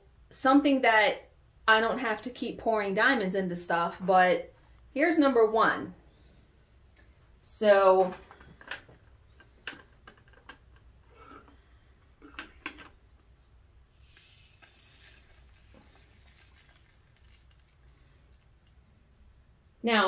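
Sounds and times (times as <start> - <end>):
small beads poured rattling: 14.0 - 18.5.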